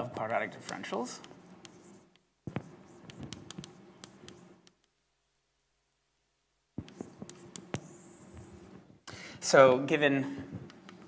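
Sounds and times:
scratching strokes on a board: 0:06.8 - 0:08.8.

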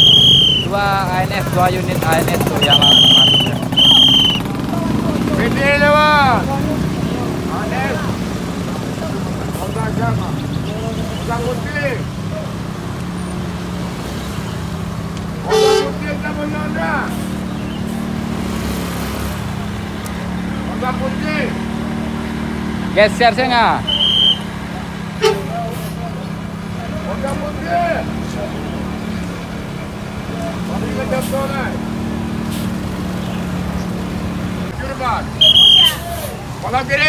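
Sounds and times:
vehicle horn honking: 0:00.0 - 0:00.7, 0:02.6 - 0:04.4, 0:15.4 - 0:16.2, 0:23.8 - 0:24.5, 0:25.1 - 0:25.8, 0:35.4 - 0:36.0
bus diesel engine running: 0:00.0 - 0:37.0
motorbikes: 0:00.0 - 0:37.0
people's voices: 0:00.0 - 0:37.0.

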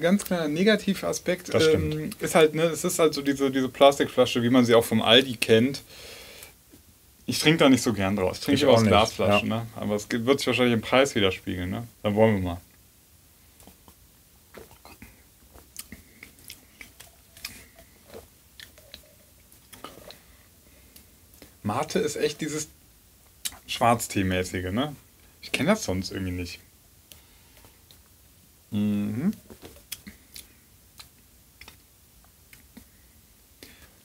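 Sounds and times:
people drinking and swallowing: 0:14.5 - 0:19.0, 0:19.7 - 0:20.3.

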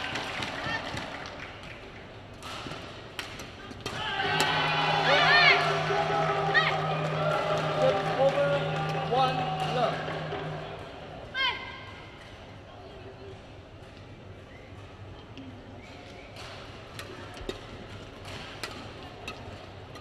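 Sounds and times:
racket striking shuttlecock: 0:02.4 - 0:05.9, 0:18.2 - 0:20.0
sustained tones: 0:04.3 - 0:11.4.

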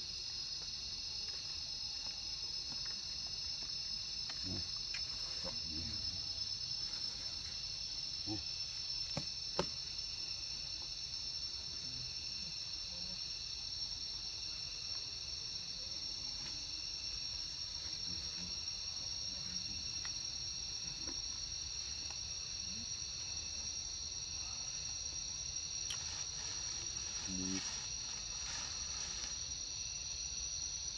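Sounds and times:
insects buzzing: 0:00.0 - 0:30.9.

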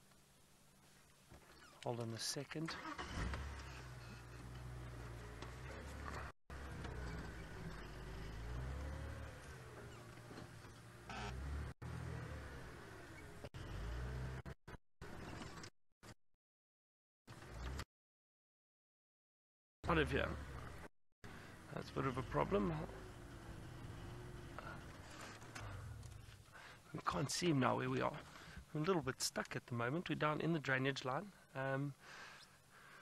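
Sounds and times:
vehicle engine running: 0:03.2 - 0:14.6, 0:19.9 - 0:26.8.

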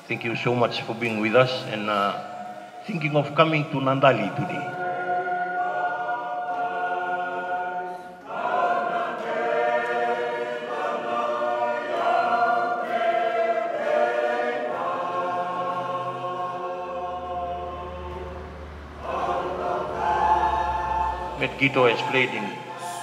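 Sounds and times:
congregation singing a hymn: 0:00.0 - 0:23.0.

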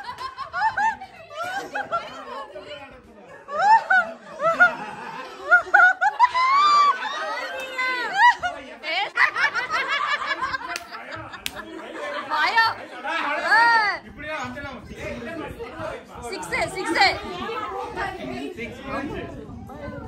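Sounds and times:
adults laughing: 0:00.0 - 0:13.3
people talking excitedly: 0:00.0 - 0:20.0.

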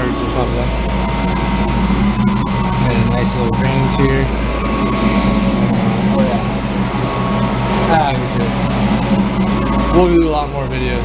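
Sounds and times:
pump machinery hum: 0:00.0 - 0:11.0
thin steady high tones: 0:00.0 - 0:11.0.

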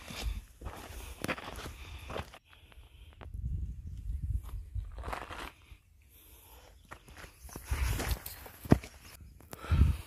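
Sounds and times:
footsteps on dirt and gravel: 0:00.0 - 0:03.4, 0:04.1 - 0:05.9, 0:06.6 - 0:09.7.

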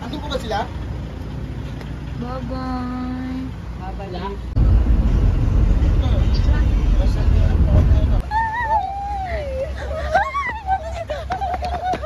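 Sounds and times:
vehicle engine idling: 0:00.0 - 0:10.0
car interior road rumble: 0:04.3 - 0:09.5.

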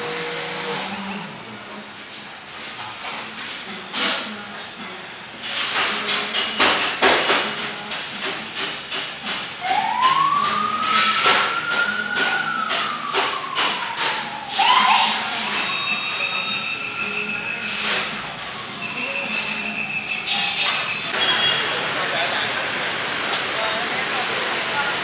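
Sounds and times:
street traffic noise: 0:00.0 - 0:25.0
ambulance siren wailing: 0:09.6 - 0:19.6
steady high tone: 0:09.6 - 0:21.6.

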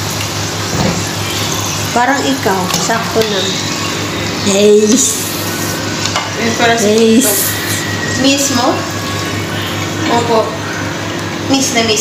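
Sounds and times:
fries sizzling in hot oil: 0:00.0 - 0:12.0.

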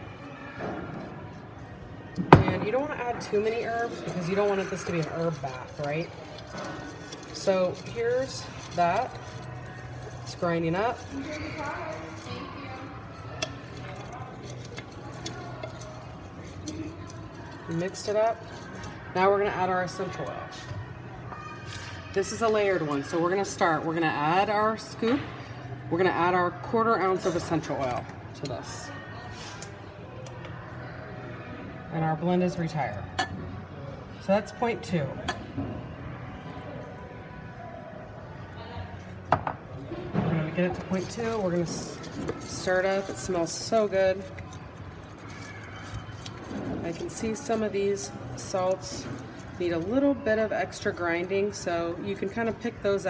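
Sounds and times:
bath salt rustling when stirred: 0:03.0 - 0:20.2, 0:40.6 - 0:53.0
glass bottle set on countertop: 0:39.3 - 0:39.6.

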